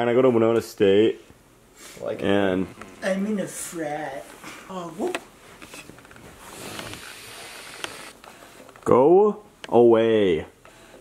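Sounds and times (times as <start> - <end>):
vape drag hiss: 6.5 - 8.2.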